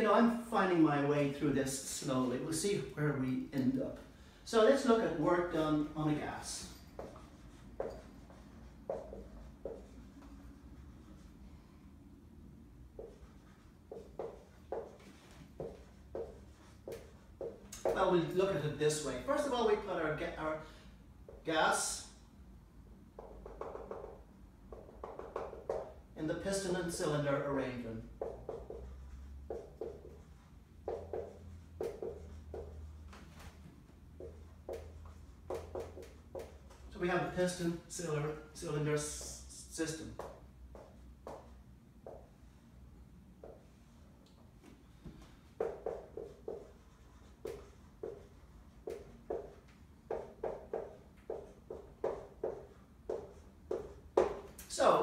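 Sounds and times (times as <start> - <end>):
marker drawing on whiteboard: 4.5 - 11.8, 12.4 - 20.6, 21.2 - 22.2, 23.1 - 42.7, 43.4 - 44.0, 44.9 - 55.0.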